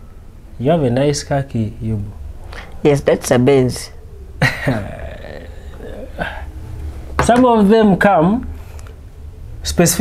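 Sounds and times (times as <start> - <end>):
low room hum: 0.0 - 10.0
man's breathy laugh: 4.4 - 5.4.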